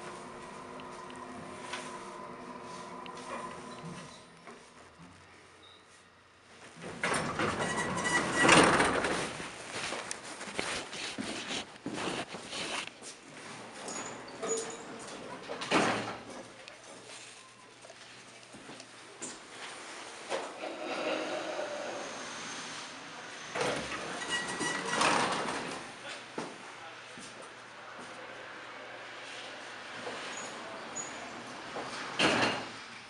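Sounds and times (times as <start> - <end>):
elevator doors sliding open: 0.0 - 4.7, 6.8 - 9.6, 13.5 - 16.3, 19.9 - 22.8, 23.4 - 26.0
elevator hum: 0.0 - 6.0.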